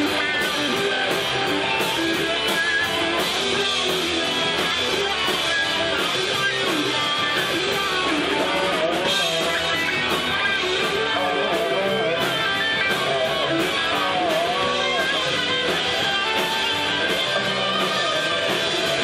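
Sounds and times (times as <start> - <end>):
electric guitar lead bending: 0.0 - 19.0
live rock band playing: 0.0 - 19.0.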